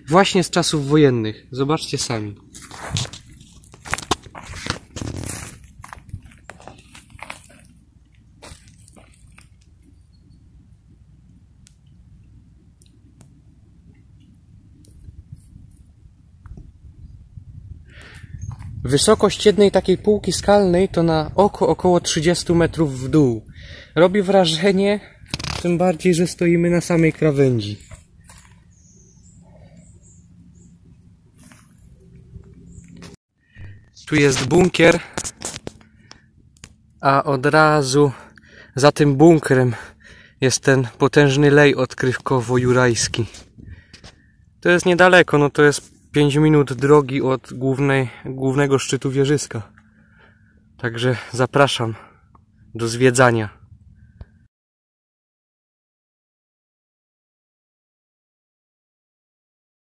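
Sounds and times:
footsteps on dry leaves: 0:02.5 - 0:09.6, 0:27.1 - 0:28.8, 0:31.3 - 0:31.9
faint high-pitched chirps: 0:09.9 - 0:10.6.

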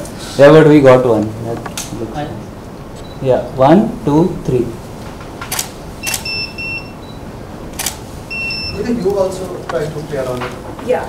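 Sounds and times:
camera shutter clicking: 0:05.5 - 0:06.4, 0:07.7 - 0:08.0
camera double electronic beep: 0:06.0 - 0:07.2, 0:07.8 - 0:08.8.

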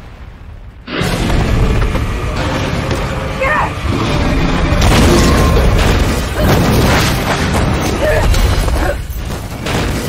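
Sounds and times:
deep rumble: 0:00.0 - 0:09.0
booming impacts: 0:00.0 - 0:10.0
film score music: 0:00.1 - 0:10.0.

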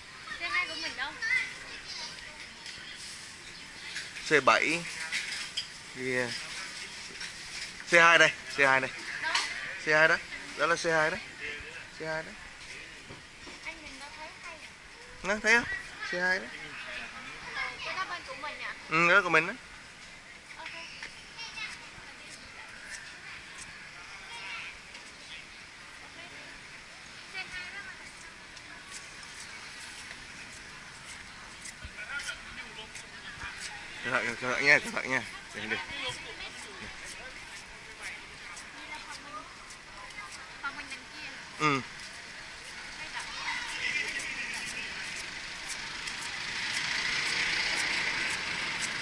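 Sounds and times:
street background noise: 0:00.0 - 0:49.0
crowd voices: 0:04.8 - 0:18.9, 0:19.8 - 0:49.0
car approaching: 0:42.1 - 0:49.0.

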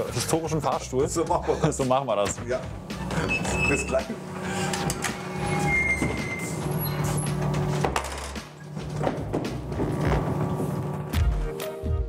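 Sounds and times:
background music: 0:00.0 - 0:12.0
machinery rumbling: 0:02.3 - 0:11.1.

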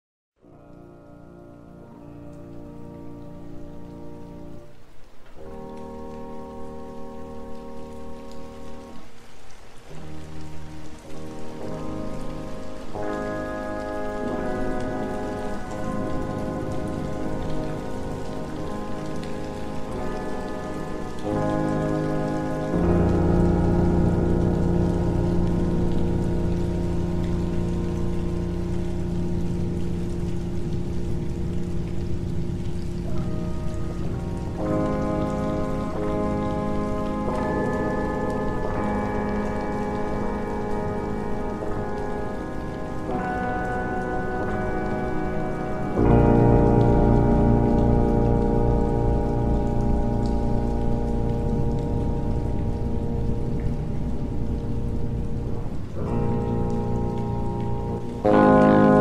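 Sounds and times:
rain: 0:00.4 - 0:59.0.

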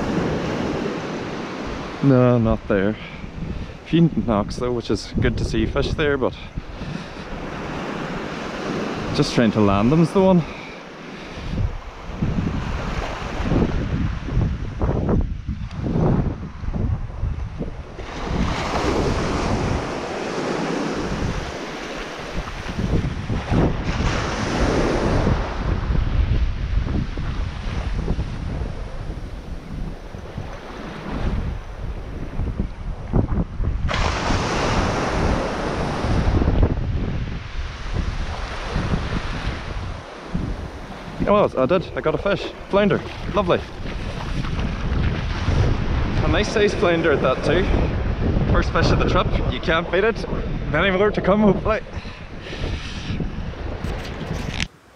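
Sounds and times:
small waves washing up a beach: 0:00.0 - 0:04.1, 0:05.0 - 0:54.9
wind buffeting the microphone: 0:00.0 - 0:54.9.

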